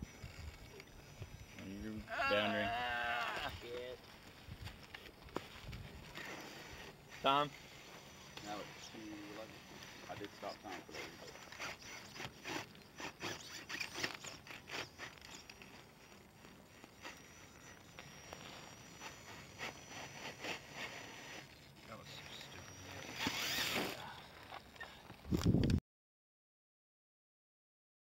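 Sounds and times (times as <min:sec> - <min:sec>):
tyres scraping on rock: 0:00.0 - 0:25.6
loud rustle: 0:03.2 - 0:25.5
footsteps in dry pine needles: 0:03.3 - 0:11.7.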